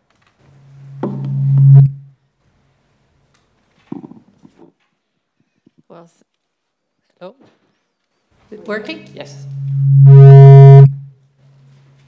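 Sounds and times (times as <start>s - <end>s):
microphone feedback howl: 0.7s - 2.2s, 9.3s - 11.2s.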